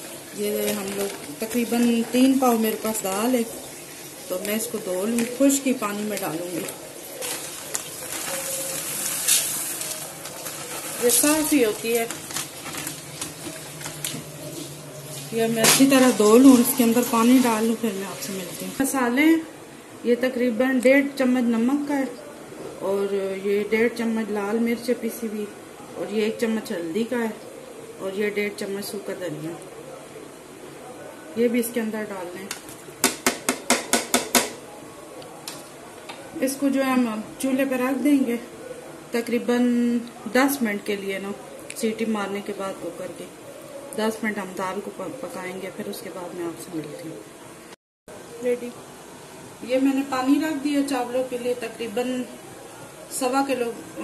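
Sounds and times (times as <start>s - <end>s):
plastic bag rustle: 0.0s - 18.9s
lentils pouring into metal pot: 6.1s - 14.2s.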